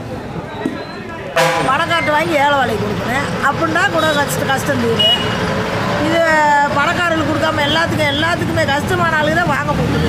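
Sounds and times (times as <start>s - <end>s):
background noise: 0.0s - 10.0s
woman talking: 1.6s - 5.1s, 6.0s - 10.0s.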